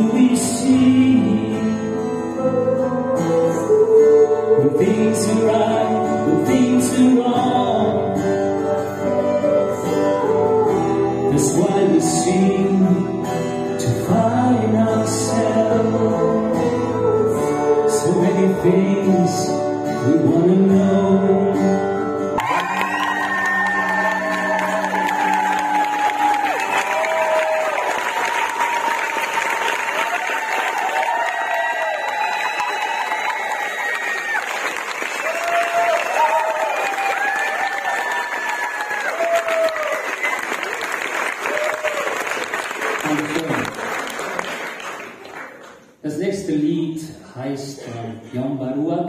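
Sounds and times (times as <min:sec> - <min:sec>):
audience applauding: 0:22.4 - 0:46.0.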